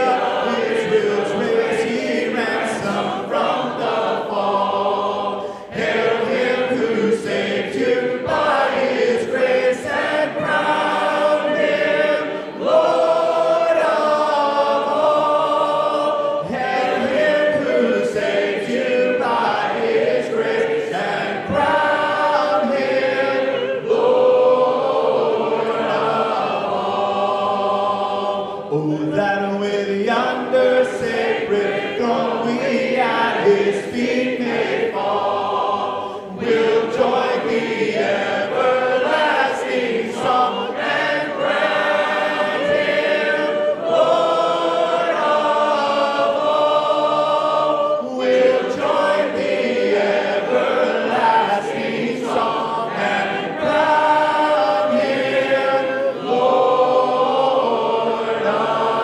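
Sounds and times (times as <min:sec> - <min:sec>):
congregation singing a hymn: 0:00.0 - 0:59.0.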